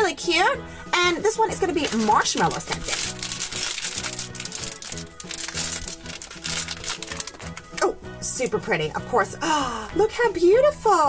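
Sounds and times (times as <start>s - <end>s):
background music: 0.0s - 11.0s
plastic wrapper crinkling: 1.6s - 7.8s.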